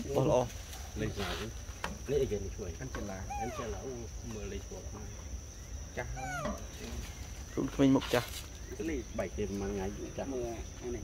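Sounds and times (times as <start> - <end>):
macaque call: 3.2 - 4.1, 5.8 - 7.8.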